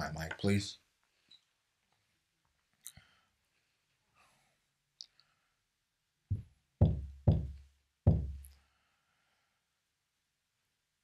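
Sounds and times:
heavy low microphone thumps: 6.3s - 8.5s.

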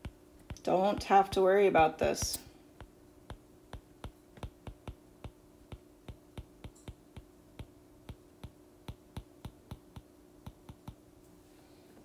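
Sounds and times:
faint steady hum: 0.0s - 12.0s
stylus tapping on glass screen: 2.2s - 11.0s.

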